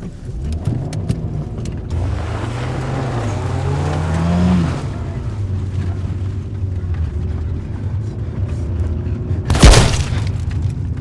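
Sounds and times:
car engine accelerating: 0.0s - 8.9s.

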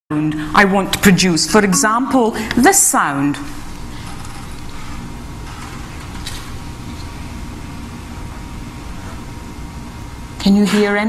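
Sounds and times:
faint hum: 0.1s - 11.0s
low room rumble and hiss: 0.1s - 11.0s.

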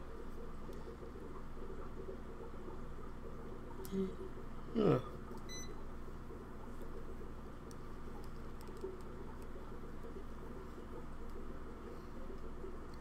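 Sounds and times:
low equipment hum: 0.0s - 13.0s
faint clicks: 7.6s - 10.2s.

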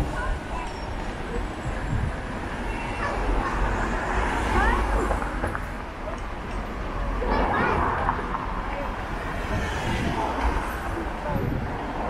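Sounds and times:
car traffic rumble: 0.0s - 12.0s
pedestrians chatter: 0.0s - 12.0s.

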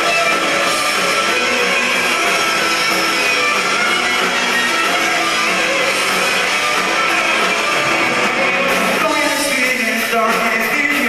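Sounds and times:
bass guitar: 0.0s - 11.0s
electric guitars: 0.0s - 11.0s.

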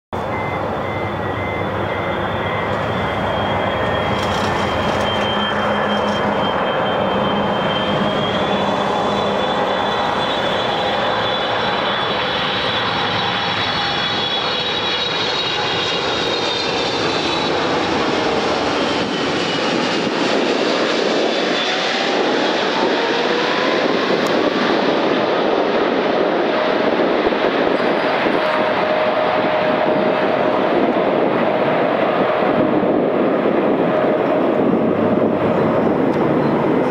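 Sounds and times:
jet engine roar and whine: 0.2s - 36.9s.

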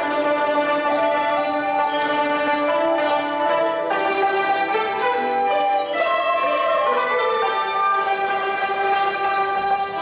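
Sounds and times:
pipa: 0.0s - 10.0s
traditional orchestra long notes: 0.0s - 10.0s.

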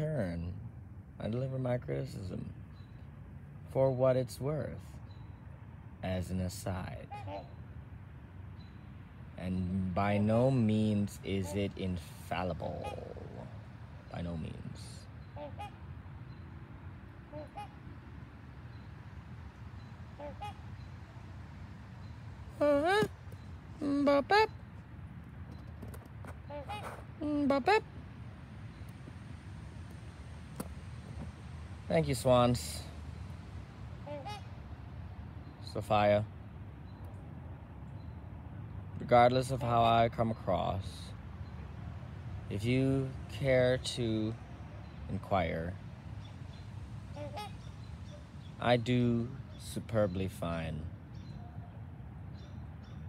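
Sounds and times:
faint steady background: 0.0s - 53.0s
swans calling: 6.8s - 7.8s, 10.6s - 37.2s, 41.3s - 49.7s
swan call: 12.7s - 13.6s, 15.2s - 15.8s, 17.3s - 17.8s, 20.1s - 21.4s, 22.4s - 24.7s, 26.4s - 28.0s, 33.9s - 34.6s, 47.0s - 48.3s.

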